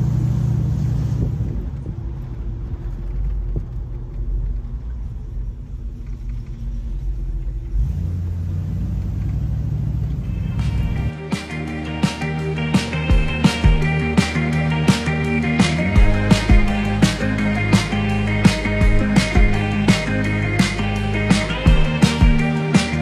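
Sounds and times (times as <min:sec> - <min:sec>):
car engine rumbling while driving: 0:00.0 - 0:11.1
music with plucked strings and beat: 0:10.2 - 0:23.0.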